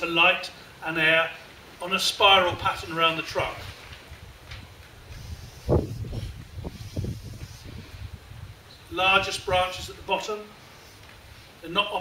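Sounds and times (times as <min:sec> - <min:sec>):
marker pen drawing on paper: 0:05.1 - 0:07.7.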